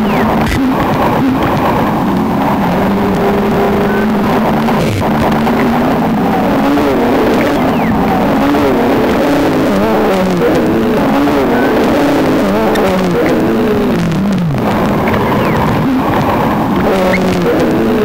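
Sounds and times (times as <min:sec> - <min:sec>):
warbling electronic tones: 0:00.0 - 0:18.0.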